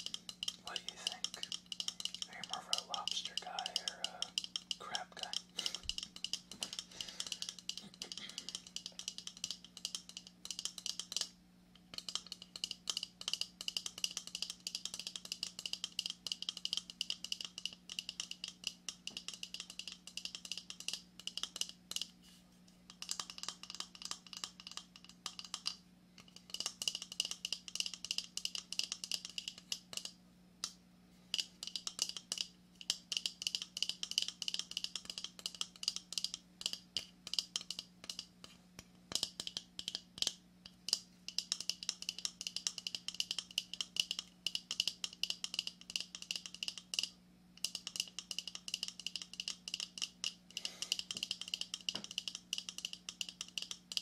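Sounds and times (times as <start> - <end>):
fingernails tapping on shell: 0.0 - 22.1, 22.9 - 54.0.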